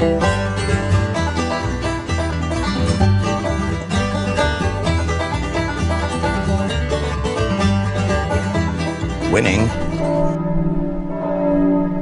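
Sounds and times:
banjo music: 0.0 - 10.4.

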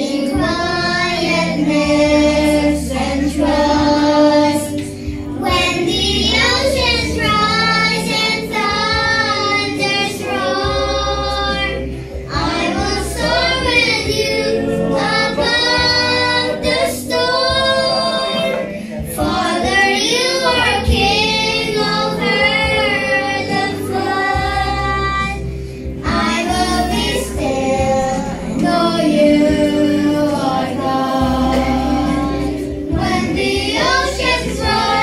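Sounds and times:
children and woman singing: 0.0 - 25.4, 26.0 - 35.0
sustained low accompaniment notes: 0.0 - 35.0.

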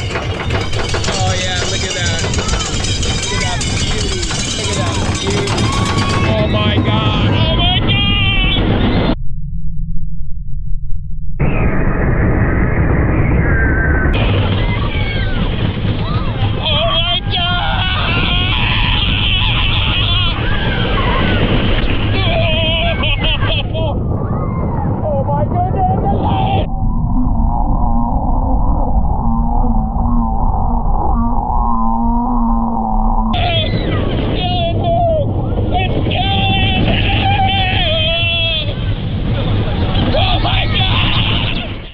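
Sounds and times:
roller coaster riders screaming: 0.0 - 9.1, 13.1 - 26.8, 33.3 - 41.9
wind rushing on microphone: 0.0 - 9.2, 11.4 - 41.9.

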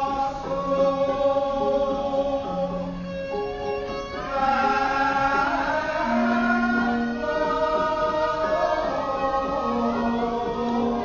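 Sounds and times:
chorus singing long held notes: 0.0 - 11.0.

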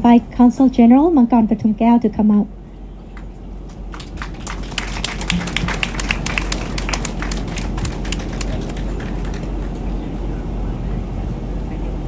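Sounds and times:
steady low rumble: 0.0 - 12.0
audience clapping: 3.1 - 10.0.

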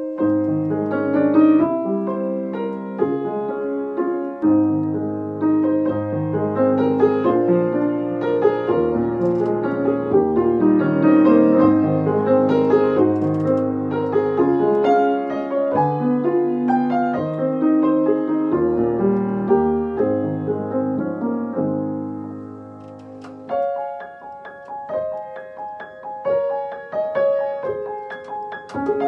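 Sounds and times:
solo piano: 0.0 - 29.0.

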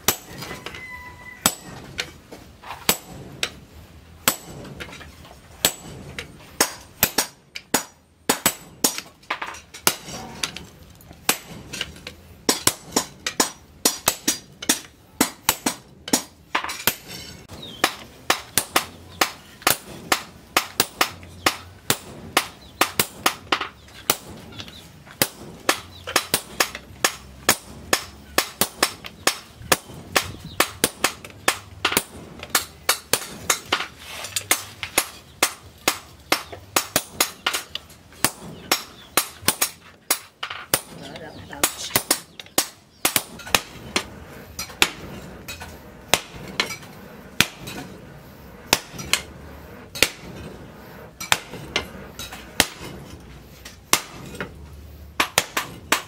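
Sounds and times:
sledgehammer striking metal tool: 49.9 - 50.5.

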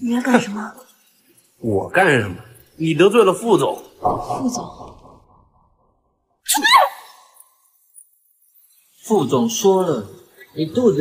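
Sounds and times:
woman's sharp cry: 6.5 - 7.2.

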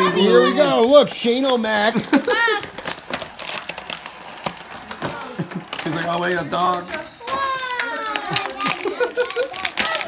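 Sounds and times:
plastic packaging crinkling: 0.5 - 10.0
person laughing: 2.0 - 2.7.

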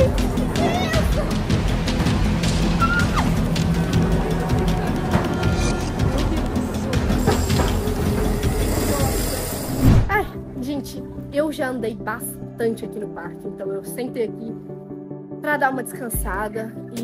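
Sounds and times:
music with rattling and clattering: 0.0 - 9.9.

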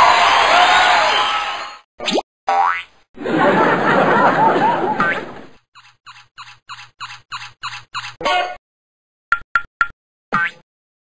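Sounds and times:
toy squeaks: 5.8 - 8.6.

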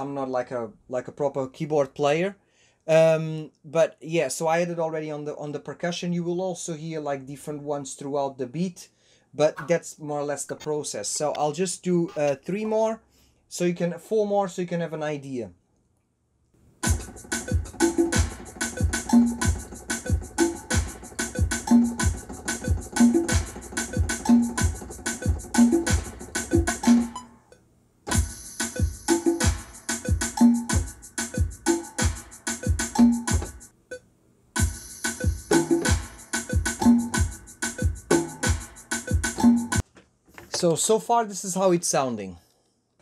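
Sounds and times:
electronic drum and percussion loop: 16.8 - 27.3, 28.1 - 33.7, 34.6 - 39.8.

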